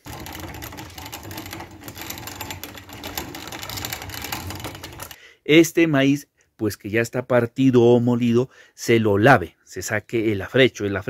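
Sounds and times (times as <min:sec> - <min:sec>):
hand grain mill grinding maize: 0:00.0 - 0:05.2.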